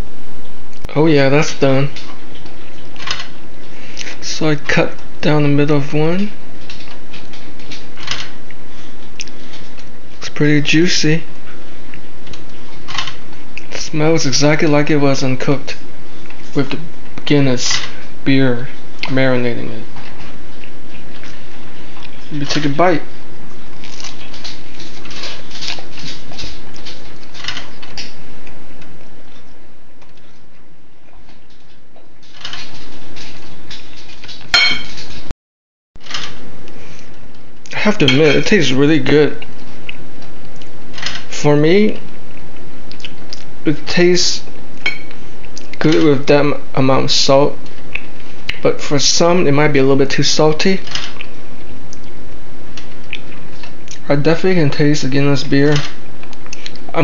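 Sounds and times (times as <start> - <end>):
chewing: 2.0 - 4.2, 6.6 - 10.2, 19.9 - 22.6, 23.4 - 35.2, 39.4 - 40.8, 42.0 - 43.6, 47.6 - 48.6, 51.1 - 54.0, 56.1 - 56.9
sharp ringing clink: 34.6 - 34.9
steady background hiss: 36.0 - 57.0.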